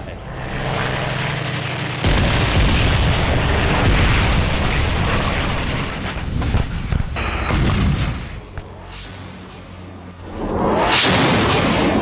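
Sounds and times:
aircraft-like engine drone: 0:00.0 - 0:12.0.

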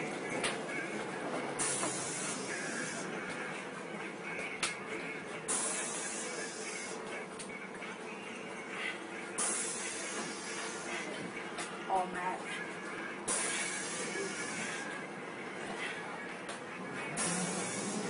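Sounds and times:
bus running noise: 0:00.0 - 0:18.0
hiss bursts: 0:01.6 - 0:03.0, 0:05.5 - 0:07.0, 0:09.4 - 0:11.0, 0:13.3 - 0:14.8, 0:17.2 - 0:18.0.

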